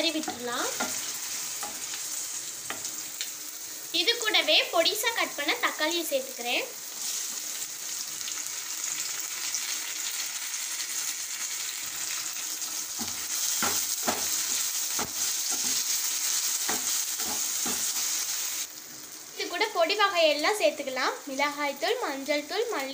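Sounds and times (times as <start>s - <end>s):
tomatoes sizzling in hot oil: 0.0s - 22.9s
wooden spatula knocking on pan: 13.0s - 15.8s.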